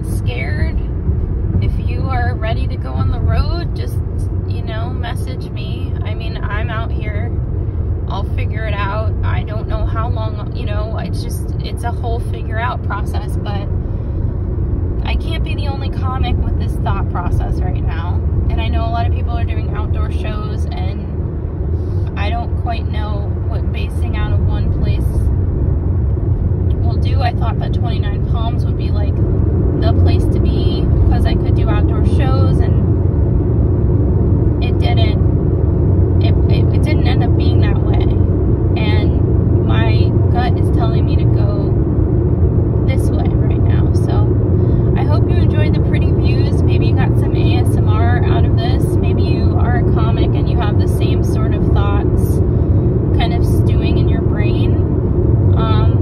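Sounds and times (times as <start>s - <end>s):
car road and engine rumble: 0.0s - 56.0s
person talking: 34.6s - 35.2s, 36.2s - 38.2s, 38.8s - 41.7s, 55.6s - 56.0s.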